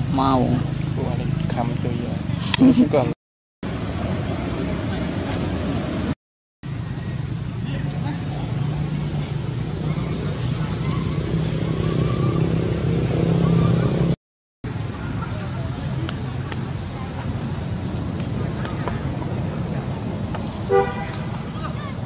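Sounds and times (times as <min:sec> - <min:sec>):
vehicle engine humming: 0:00.0 - 0:22.0.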